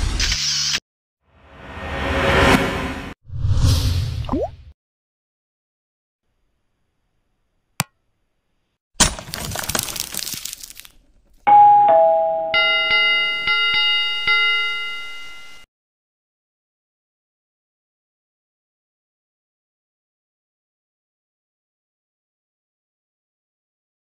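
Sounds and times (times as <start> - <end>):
shattering crash: 9.0 - 10.9
bell ringing: 11.5 - 15.6.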